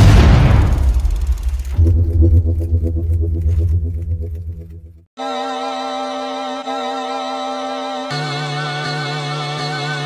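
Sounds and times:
deep bass tone: 1.1 - 5.0.

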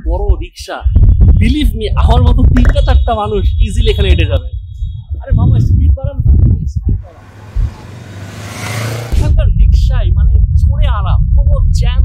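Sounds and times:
motorized rickshaw driving past: 7.1 - 9.2.

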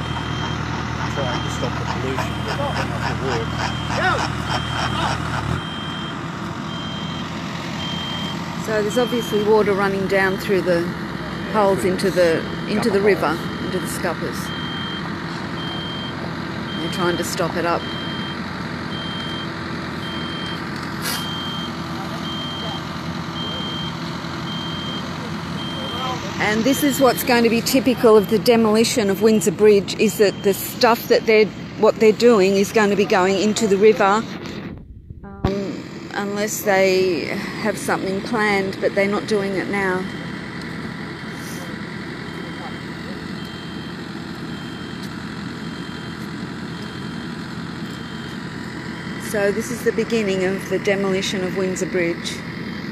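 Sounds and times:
reversing alarm beeping: 0.0 - 34.4, 35.4 - 52.9
heavy engine running: 0.0 - 52.9.

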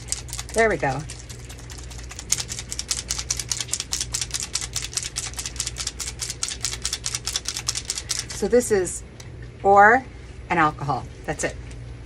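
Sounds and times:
mixing balls rattling in bottle: 0.0 - 8.7.

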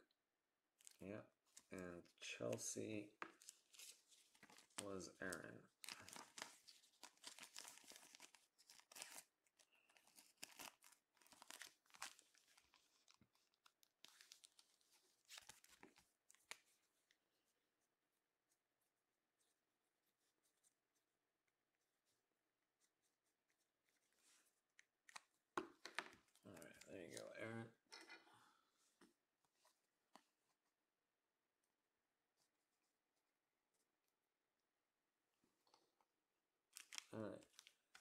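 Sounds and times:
plastic sleeves crinkling: 3.2 - 16.8, 36.7 - 38.0.

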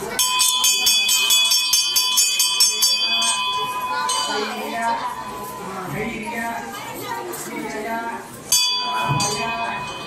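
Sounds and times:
brass bell rung rapidly: 0.1 - 5.7.

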